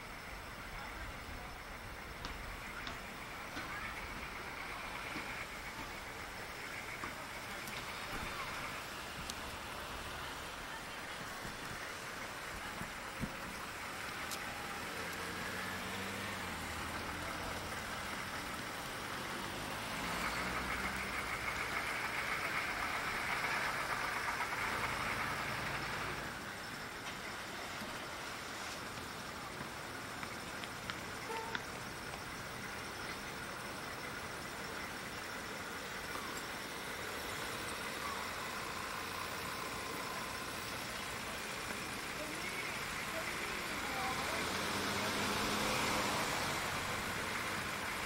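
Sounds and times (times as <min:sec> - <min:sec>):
low engine hum: 0:00.0 - 0:48.0
vehicle passing by: 0:13.4 - 0:26.6, 0:36.1 - 0:48.0.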